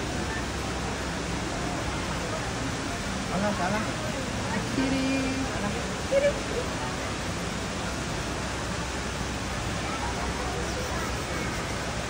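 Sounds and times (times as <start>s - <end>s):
steady hissing noise: 0.0s - 12.0s.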